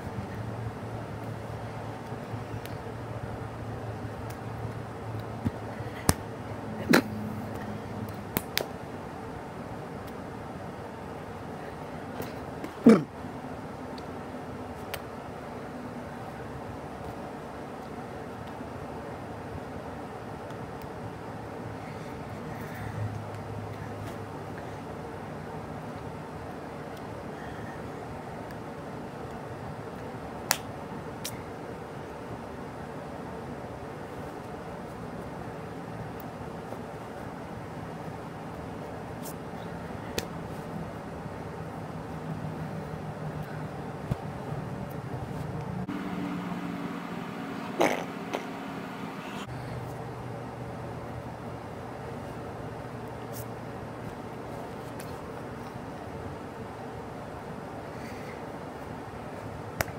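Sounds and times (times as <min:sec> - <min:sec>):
low background noise: 0:00.0 - 0:59.9
steady low hum: 0:00.0 - 0:59.9
finger snap: 0:04.2 - 0:06.2, 0:06.8 - 0:08.8, 0:14.8 - 0:15.1, 0:30.4 - 0:31.4, 0:40.1 - 0:40.4.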